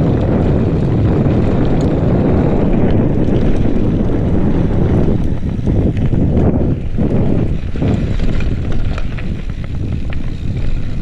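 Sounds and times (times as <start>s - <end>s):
bike tyres rumbling on dirt trail: 0.0s - 11.0s
wind noise on microphone: 0.0s - 11.0s.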